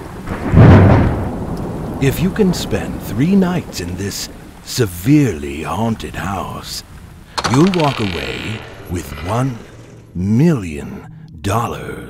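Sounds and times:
thunder rolling: 0:00.0 - 0:10.4
steady rain: 0:00.0 - 0:11.0.

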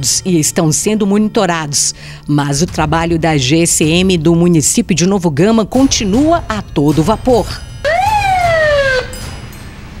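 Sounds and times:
police siren whoop: 0:07.9 - 0:09.2.

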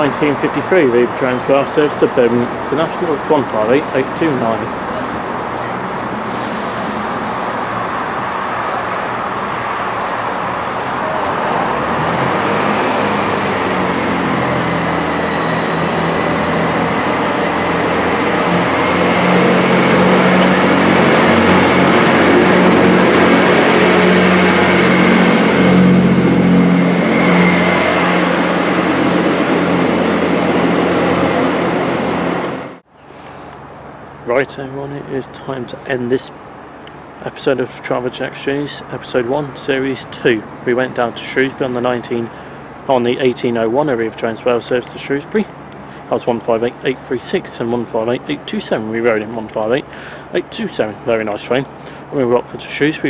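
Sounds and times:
train diesel engines running: 0:00.0 - 0:53.0.

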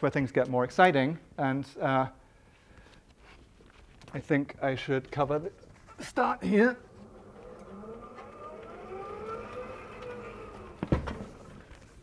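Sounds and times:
sliding panel whining on track: 0:06.6 - 0:12.0.

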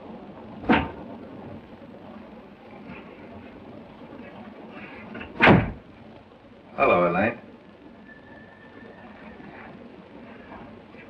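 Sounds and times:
train compartment door thudding: 0:05.1 - 0:05.8.

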